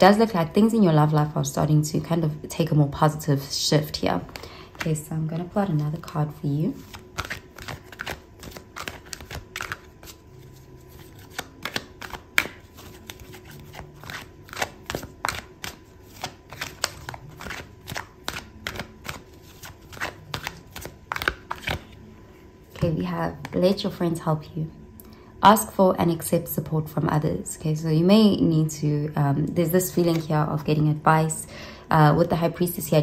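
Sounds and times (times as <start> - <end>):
cards being shuffled: 4.2 - 22.0, 29.9 - 30.3.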